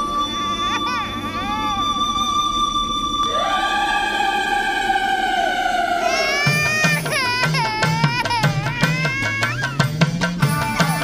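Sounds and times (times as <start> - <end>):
long held high note: 0.0 - 8.0
drum beat: 5.9 - 11.0.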